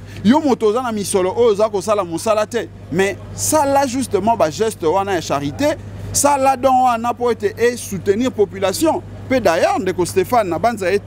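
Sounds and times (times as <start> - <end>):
steady low hum: 0.0 - 11.0
man speaking: 0.2 - 11.0.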